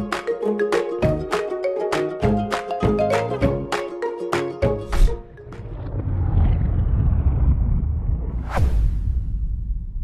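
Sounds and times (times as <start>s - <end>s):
deep rumble: 5.1s - 10.0s.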